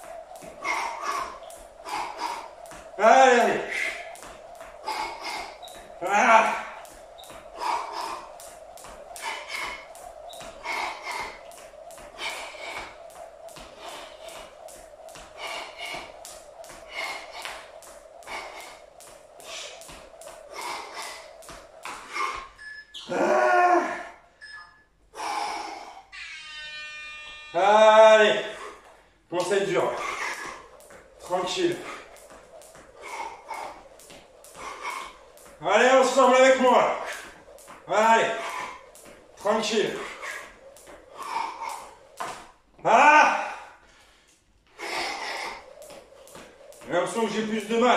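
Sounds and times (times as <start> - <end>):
jump rope slapping tiled floor: 0.0 - 22.6, 28.4 - 47.9
loud breathing: 0.4 - 22.6, 25.1 - 26.1, 28.4 - 32.3, 32.9 - 35.5, 38.1 - 42.5, 43.4 - 46.8.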